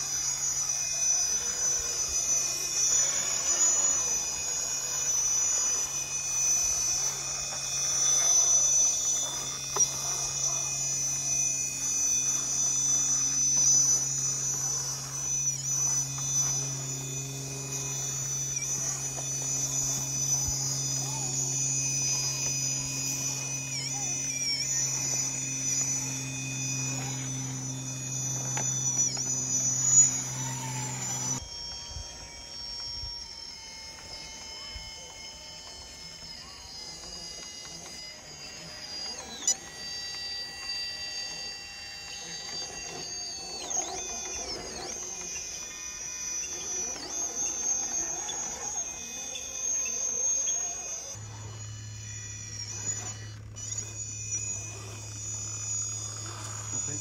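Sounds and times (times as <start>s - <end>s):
electric motors whining: 0.0s - 57.0s.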